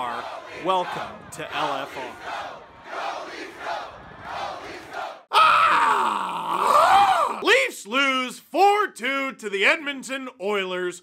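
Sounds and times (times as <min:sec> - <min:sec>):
crowd shouting: 0:00.0 - 0:07.4.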